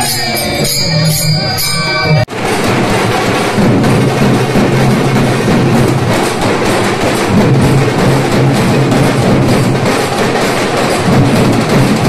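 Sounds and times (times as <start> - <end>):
drums beaten with sticks: 0.0 - 12.0.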